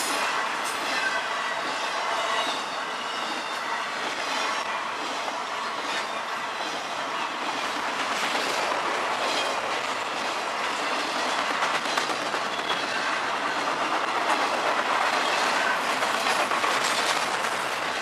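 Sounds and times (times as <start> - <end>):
freight train rumbling rattle: 0.0 - 18.0.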